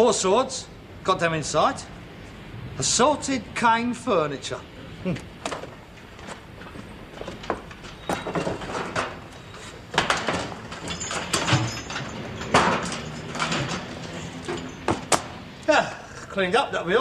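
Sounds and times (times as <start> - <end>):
objects knocking and clattering: 5.4 - 15.6.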